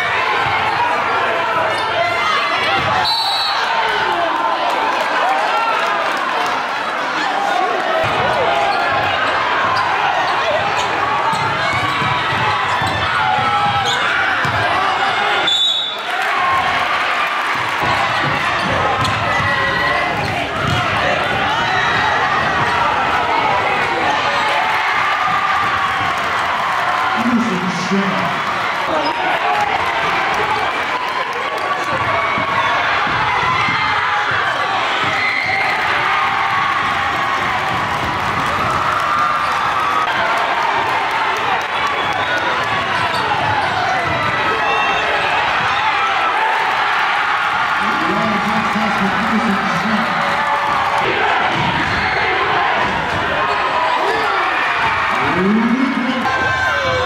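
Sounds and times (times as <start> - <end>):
crowd calling and shouting: 0.0 - 57.0
basketball bouncing on court: 8.0 - 15.0, 17.5 - 23.9, 42.6 - 45.8.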